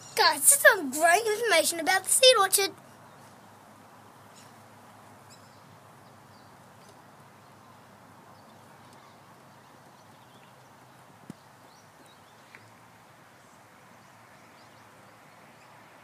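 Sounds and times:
faint outdoor hiss: 0:00.0 - 0:16.0.

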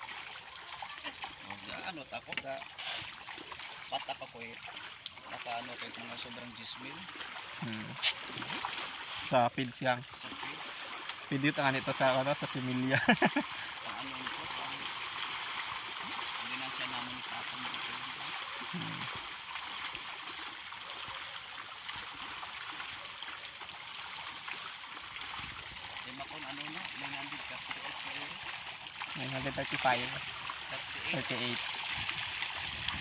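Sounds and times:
fish splashing at water surface: 0:00.0 - 0:09.4, 0:10.0 - 0:33.0.

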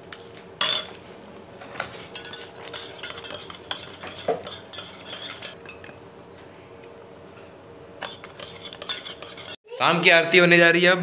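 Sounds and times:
metal spoon stirring in steel tumbler: 0:01.9 - 0:06.0, 0:08.0 - 0:09.6.

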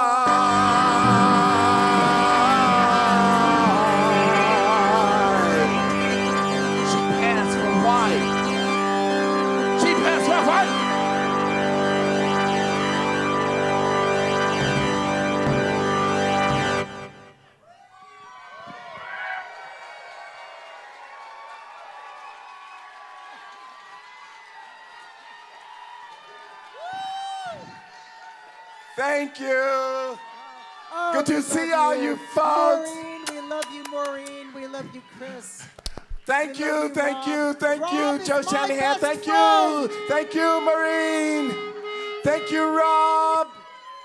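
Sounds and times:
wavering voice: 0:00.0 - 0:08.3, 0:36.7 - 0:43.6
live band drone piece: 0:00.0 - 0:17.3, 0:37.9 - 0:43.6
crowd whoops: 0:17.6 - 0:29.0, 0:30.1 - 0:35.7.

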